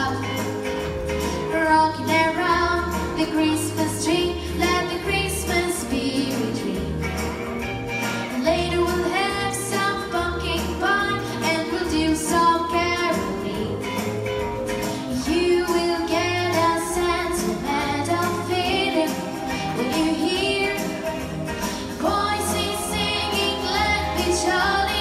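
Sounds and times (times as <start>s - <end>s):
girl singing into microphone: 0.0s - 0.3s, 1.5s - 6.9s, 8.4s - 14.0s, 15.1s - 21.2s, 22.0s - 25.0s
backing music with bass line: 0.0s - 25.0s.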